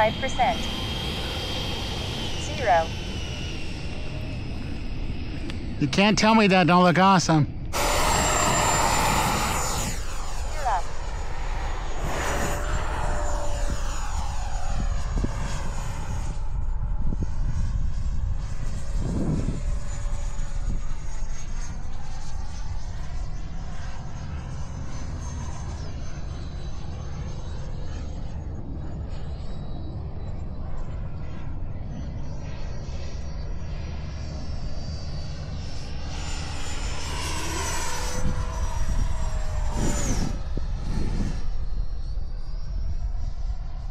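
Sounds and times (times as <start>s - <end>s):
model jet fan whine: 0.0s - 43.9s
wind rumble on microphone: 7.3s - 43.9s.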